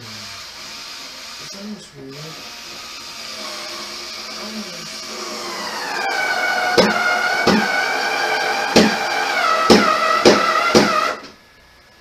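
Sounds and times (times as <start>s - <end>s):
power drill motor whining: 0.0s - 11.3s.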